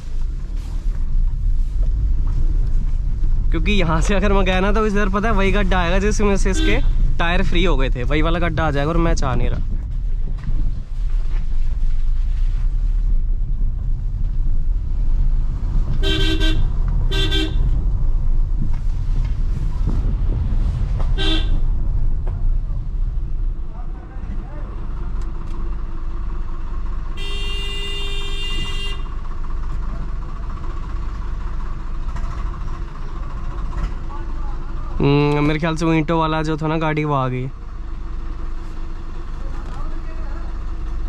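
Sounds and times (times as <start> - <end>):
car engine rumble: 0.0 - 41.0
car horn tooting: 6.4 - 7.0, 16.0 - 17.7, 21.2 - 21.6, 27.2 - 29.1.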